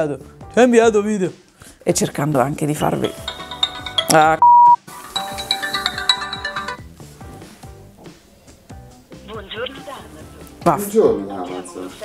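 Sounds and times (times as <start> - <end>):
background music: 0.0 - 12.0
mobile phone ringtone: 3.0 - 6.9.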